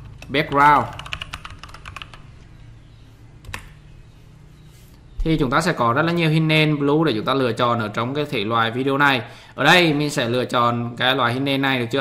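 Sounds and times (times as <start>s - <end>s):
computer keyboard typing: 0.0s - 2.4s, 3.4s - 3.8s.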